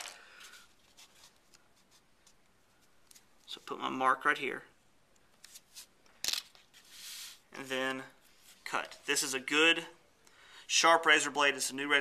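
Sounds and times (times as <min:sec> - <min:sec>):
paper rustling: 0:00.0 - 0:03.6.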